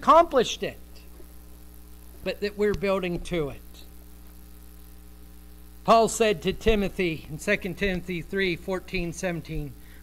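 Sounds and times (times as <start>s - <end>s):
man speaking: 0.0s - 1.1s, 2.2s - 3.9s, 5.8s - 9.8s
electrical hum: 0.0s - 10.0s.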